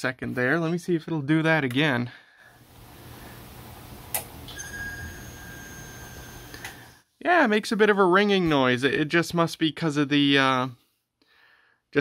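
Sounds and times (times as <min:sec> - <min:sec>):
lamp ballast high-pitched ringing: 0:04.5 - 0:07.0.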